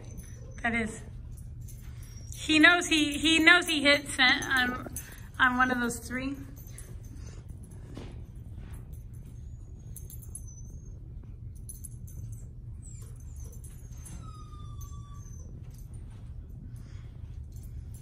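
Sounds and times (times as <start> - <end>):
dog collar tags jingling: 0.0 - 18.0
low hum: 0.0 - 18.0.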